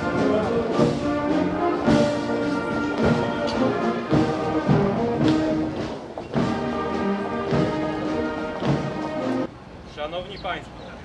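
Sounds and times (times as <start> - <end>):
brass band playing a march: 0.0 - 9.5.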